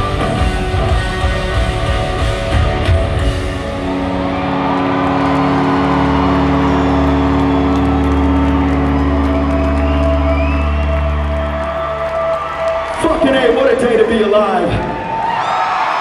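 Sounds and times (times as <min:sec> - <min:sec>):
rock band holding a chord: 0:00.0 - 0:12.9.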